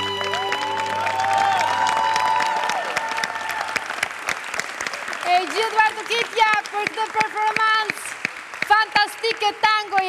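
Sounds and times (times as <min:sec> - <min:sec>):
electric violin notes: 0:00.0 - 0:02.4
audience applause: 0:00.0 - 0:10.0.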